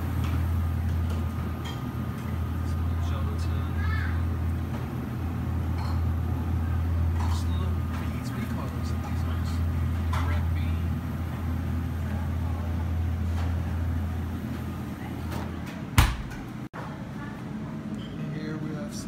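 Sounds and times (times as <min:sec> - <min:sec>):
refrigerator compressor hum: 0:00.0 - 0:19.0.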